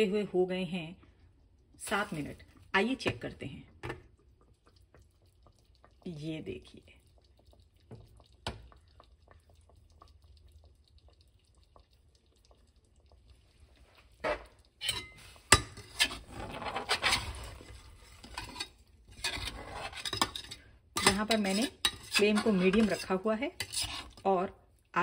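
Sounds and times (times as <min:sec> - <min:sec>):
gravy simmering with crackles: 0:00.0 - 0:25.0
metal spatula scraping pot: 0:14.2 - 0:24.4.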